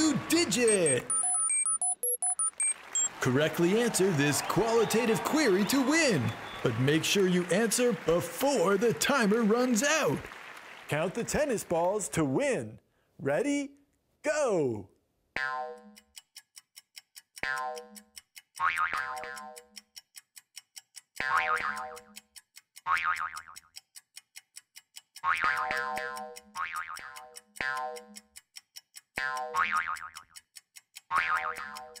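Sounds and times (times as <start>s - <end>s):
timer ticking: 0.0s - 10.2s, 15.4s - 32.0s
cartoon boing sound effects: 15.4s - 16.0s, 25.3s - 28.0s, 29.2s - 30.2s, 31.1s - 31.8s.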